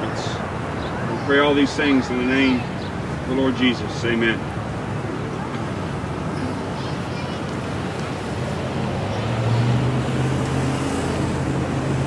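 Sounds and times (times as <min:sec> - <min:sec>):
passing vehicle engine drone: 0:07.5 - 0:12.0.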